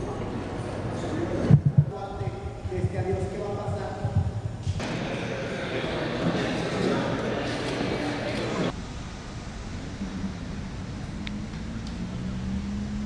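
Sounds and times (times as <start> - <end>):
indistinct voices in echoing room: 0.0 - 8.8
murmur of many people talking: 0.0 - 8.9
low thuds: 1.5 - 4.8.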